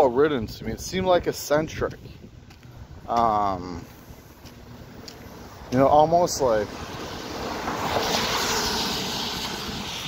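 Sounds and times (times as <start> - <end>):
passing vehicle whoosh: 6.6 - 10.0.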